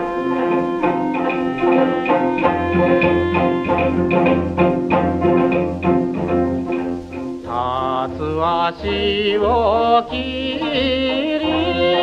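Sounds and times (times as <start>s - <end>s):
band accompaniment: 0.0s - 12.0s
singer with vibrato: 7.5s - 12.0s.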